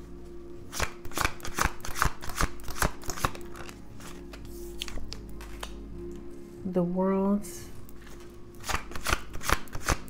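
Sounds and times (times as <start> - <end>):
cards being shuffled: 0.7 - 6.2, 8.0 - 10.0.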